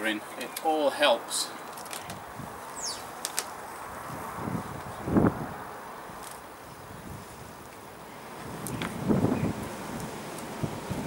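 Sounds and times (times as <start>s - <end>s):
wind noise on microphone: 2.0s - 3.1s, 3.8s - 11.0s.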